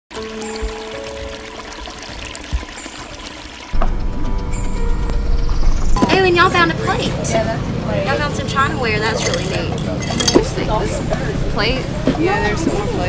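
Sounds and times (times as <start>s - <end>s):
water pouring over rocks: 0.1s - 3.8s.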